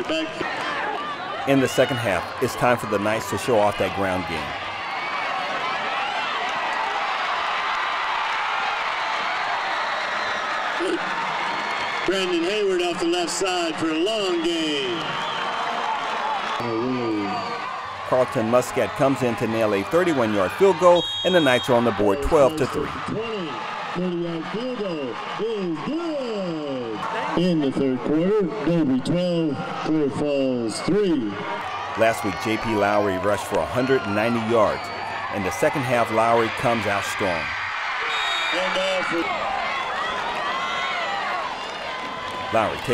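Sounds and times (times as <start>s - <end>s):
football crowd cheering and shouting: 0.0s - 42.9s
man talking: 1.5s - 4.5s, 16.6s - 17.4s, 18.1s - 37.5s, 42.5s - 42.9s.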